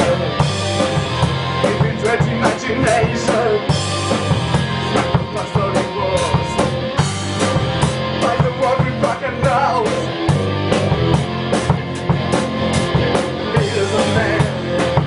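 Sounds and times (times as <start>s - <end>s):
band playing live: 0.0s - 15.0s
drum and cymbal hits: 0.0s - 15.0s.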